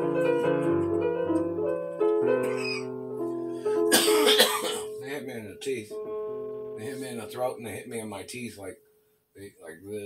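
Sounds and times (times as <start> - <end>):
electronic keyboard sustained chords: 0.0 - 8.3
person coughing: 3.9 - 5.0.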